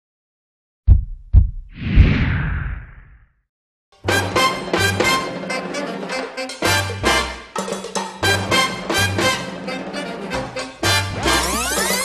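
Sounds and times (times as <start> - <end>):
deep low hits: 0.9 - 3.2
rising whoosh: 1.7 - 3.2.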